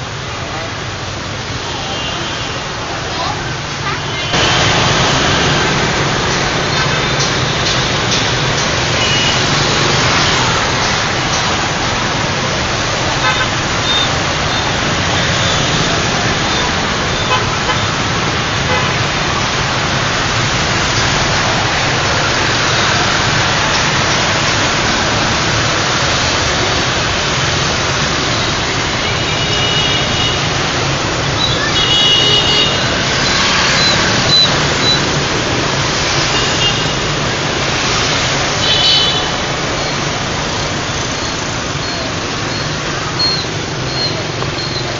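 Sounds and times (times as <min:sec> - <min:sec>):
scooters and cars passing: 0:00.0 - 0:44.9
car horns tooting: 0:06.6 - 0:09.8, 0:13.2 - 0:18.0, 0:31.3 - 0:35.2, 0:38.5 - 0:39.6.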